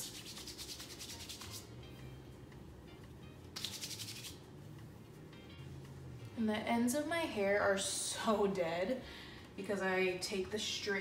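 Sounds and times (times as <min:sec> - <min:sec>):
palms rubbing together: 0:00.0 - 0:01.7, 0:03.6 - 0:04.4.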